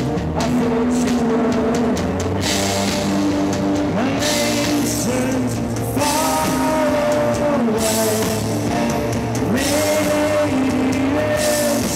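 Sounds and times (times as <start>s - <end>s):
live rock band playing: 0.0s - 11.9s.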